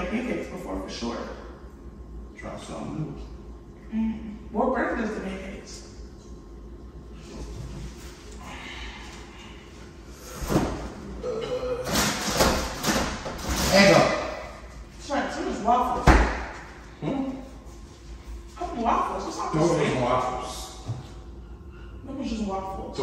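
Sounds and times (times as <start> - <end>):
refrigerator door thumping shut: 16.0 - 16.5.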